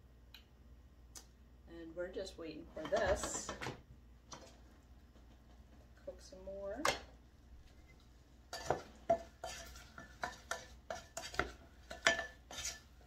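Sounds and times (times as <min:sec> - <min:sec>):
wooden spoon stirring in saucepan: 0:07.6 - 0:13.0.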